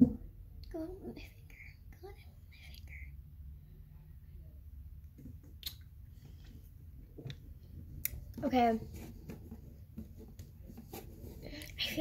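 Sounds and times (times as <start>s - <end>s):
low room hum: 0.0s - 12.0s
girl whispering: 0.7s - 3.2s, 11.5s - 12.0s.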